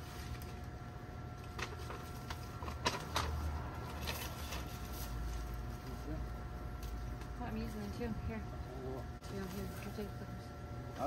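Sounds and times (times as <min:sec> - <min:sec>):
dry plant stalks rustling: 0:00.0 - 0:08.2.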